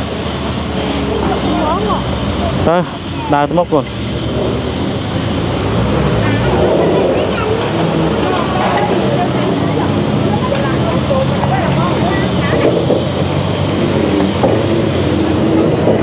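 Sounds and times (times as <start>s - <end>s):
crowd chatter: 0.0s - 16.0s
heavy machinery engine running: 0.0s - 16.0s.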